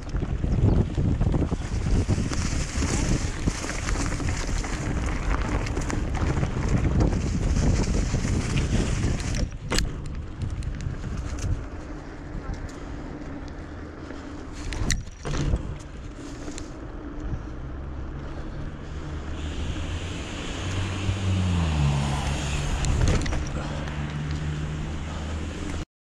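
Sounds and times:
wind on microphone: 0.0 - 12.7, 18.6 - 25.8
bike tyre rumble on asphalt: 0.0 - 25.8
low motor hum: 0.0 - 25.8.

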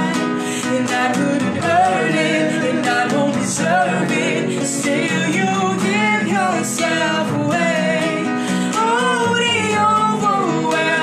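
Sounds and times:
man and woman singing: 0.0 - 11.0
strummed classical guitar: 0.0 - 11.0.

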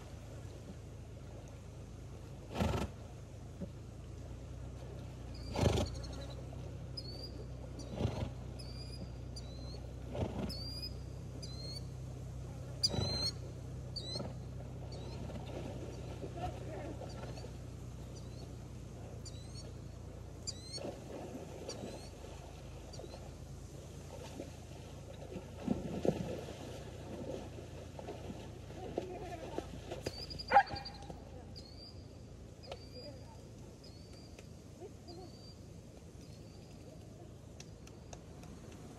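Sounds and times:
horse snorting: 2.5 - 3.0, 5.4 - 6.2, 7.8 - 8.5, 10.0 - 10.7
small bird chirping: 5.3 - 6.4, 7.0 - 9.9, 10.5 - 11.9, 12.8 - 15.2, 17.1 - 18.6, 19.2 - 20.9, 30.0 - 36.9
dog barking: 30.5 - 30.9.

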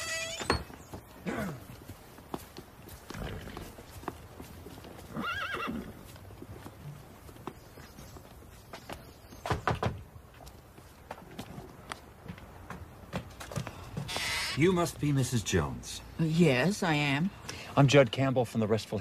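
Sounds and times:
horse whinnying: 0.0 - 0.7, 5.1 - 6.0, 14.1 - 14.6.

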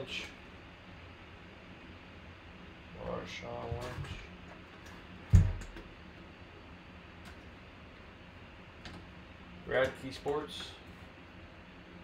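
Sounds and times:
faint clicking handling noise: 9.7 - 11.0.

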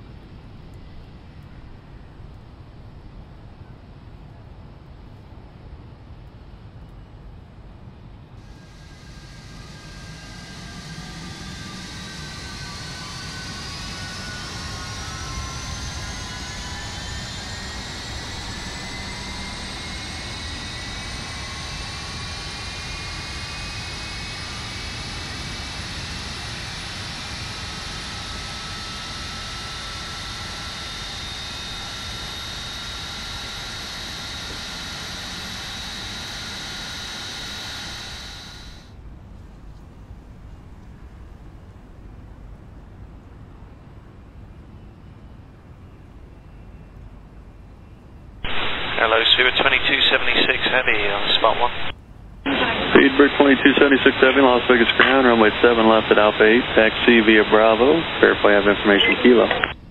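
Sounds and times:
jet engine turbine whine: 0.0 - 39.1, 40.0 - 59.9.

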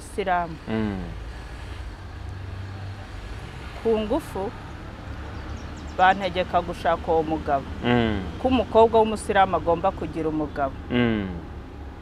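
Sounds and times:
woman speaking: 0.0 - 0.6, 3.9 - 4.5, 6.0 - 10.8
distant motor vehicle rumble: 0.0 - 12.0.

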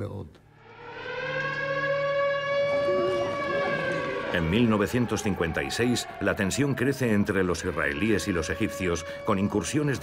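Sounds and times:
hand-cranked siren wailing: 0.6 - 10.0.

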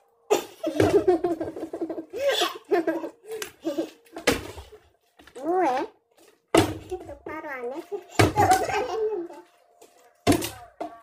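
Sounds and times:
plastic bottle thudding on a table: 10.2 - 10.9.

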